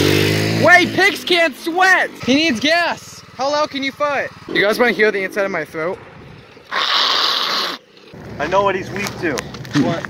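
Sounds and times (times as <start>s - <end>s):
person making hissing throat rasp: 6.7s - 7.8s.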